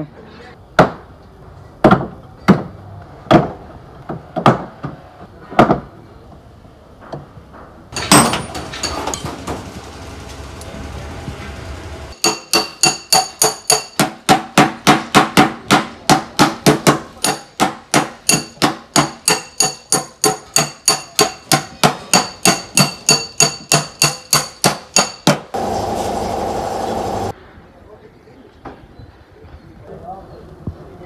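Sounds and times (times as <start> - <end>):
metal tool tapping sheet metal: 12.2 - 25.4.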